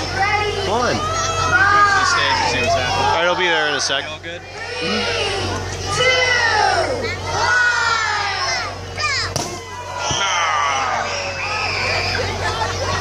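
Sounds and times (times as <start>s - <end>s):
children shouting and cheering: 0.0s - 13.0s
steady low hum: 0.0s - 13.0s.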